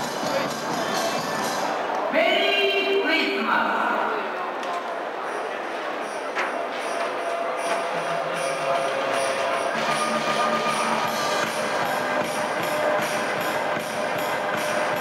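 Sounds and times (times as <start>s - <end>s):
music over arena sound system: 0.0s - 1.8s, 6.5s - 15.0s.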